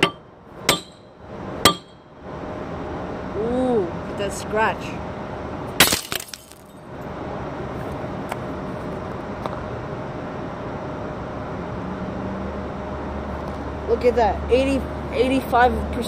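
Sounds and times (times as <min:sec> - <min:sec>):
breaking glass scattering: 0:05.8 - 0:06.8
glass bottle smashing: 0:05.8 - 0:06.8.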